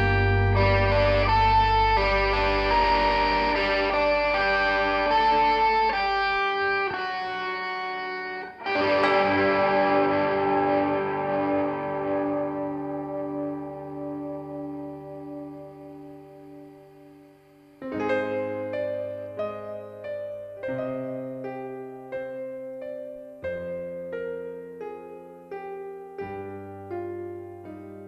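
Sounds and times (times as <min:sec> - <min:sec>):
held low note: 0:00.0 - 0:06.0
sustained chord: 0:00.0 - 0:07.0, 0:08.5 - 0:19.4.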